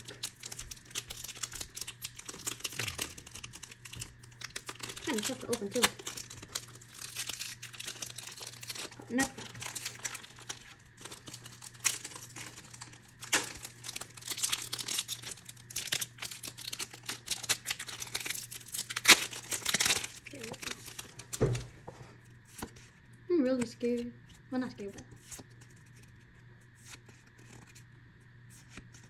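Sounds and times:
foil wrapper tearing and crinkling: 0.0 - 21.6.

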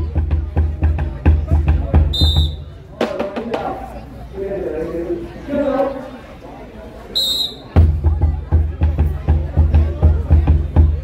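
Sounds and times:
heavy drum beating: 0.0 - 3.9, 7.8 - 11.0
referee's whistle blast: 2.1 - 2.7, 7.2 - 7.8.

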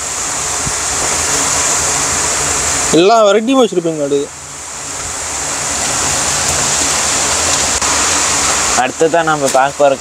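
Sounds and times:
rushing whoosh hiss: 0.0 - 10.0.

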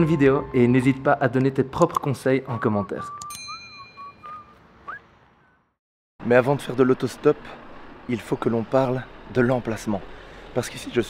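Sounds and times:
person whistling: 2.5 - 5.6
bell-like ding: 3.2 - 4.4.

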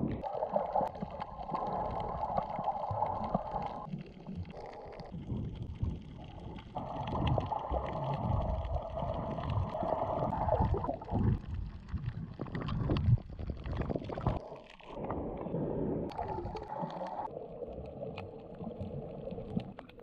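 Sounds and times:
underwater rumbling and gurgling: 0.0 - 20.0.

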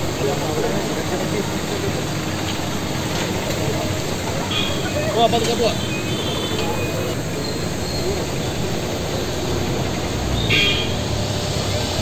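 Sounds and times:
street traffic noise: 0.0 - 12.0.

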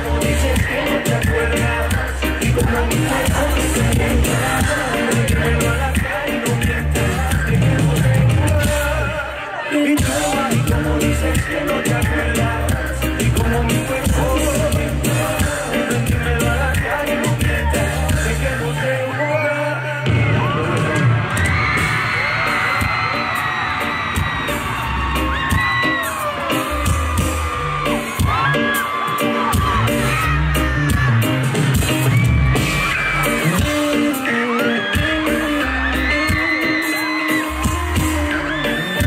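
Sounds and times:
steady drum beat: 0.0 - 9.1, 10.0 - 18.7, 20.1 - 39.0
person singing: 0.0 - 21.2, 32.6 - 39.0
loud concert music with bass: 0.0 - 39.0
high whoops: 21.4 - 31.1.

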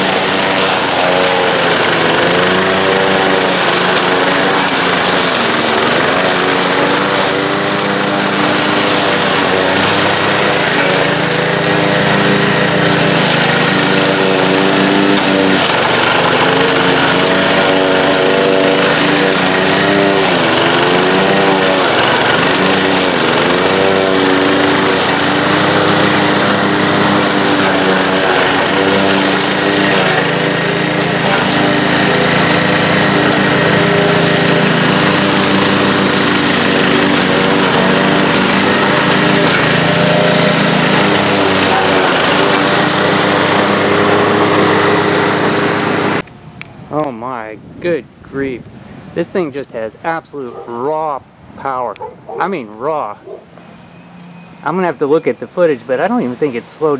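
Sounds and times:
push mower engine under load: 0.0 - 56.9.

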